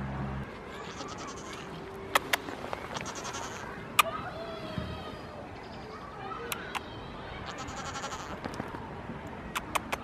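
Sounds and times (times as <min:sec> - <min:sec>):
goat bleating: 0:00.7 - 0:01.8, 0:02.9 - 0:03.7, 0:07.4 - 0:08.4
sharp clicks: 0:09.5 - 0:10.0.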